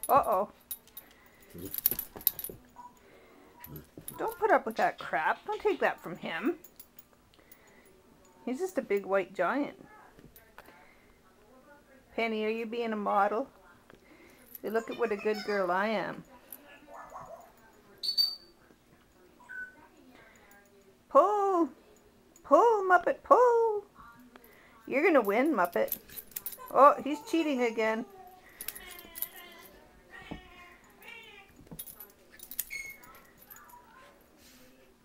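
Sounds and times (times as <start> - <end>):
collar tags jingling: 0.0 - 9.6, 14.1 - 19.2, 24.3 - 34.3.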